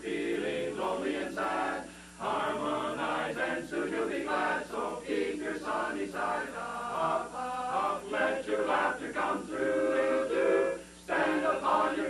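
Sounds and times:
men's chorus singing a cappella: 0.0 - 12.0.

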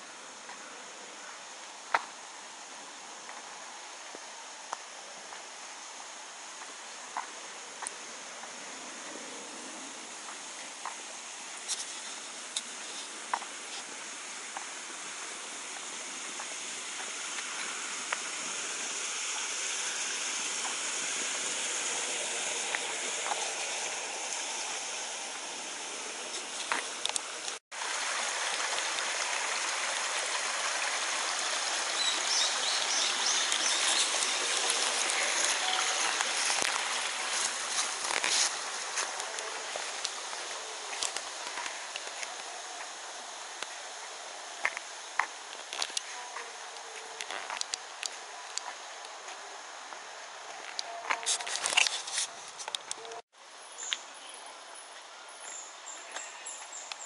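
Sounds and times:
stream rushing: 1.4 - 53.6.

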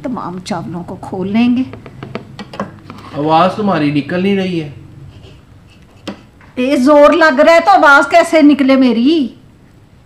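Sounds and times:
metal ladle scraping pot: 2.4 - 3.3.

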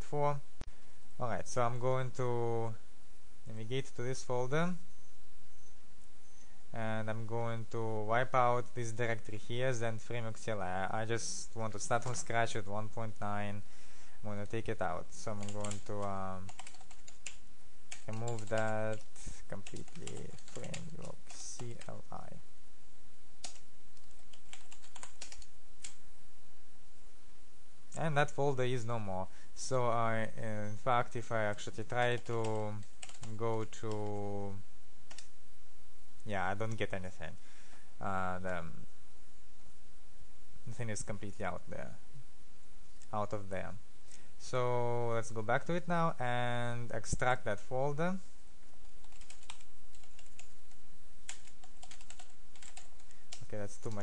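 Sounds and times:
computer keyboard typing: 15.3 - 22.0, 23.4 - 26.0, 32.0 - 34.2, 48.8 - 50.6, 51.3 - 54.0
keyboard keys tapping: 51.3 - 52.9.

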